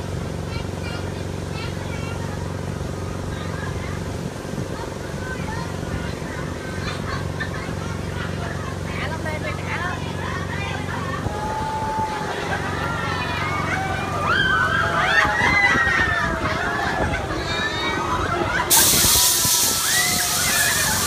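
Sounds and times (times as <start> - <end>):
ride machinery humming: 0.0 - 21.0
people calling out: 10.1 - 19.0.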